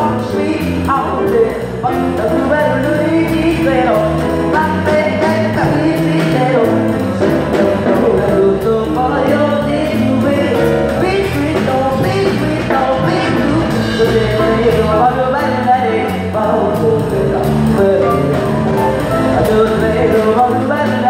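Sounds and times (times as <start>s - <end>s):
drum kit beat: 0.0s - 21.0s
person singing into microphone: 0.0s - 21.0s.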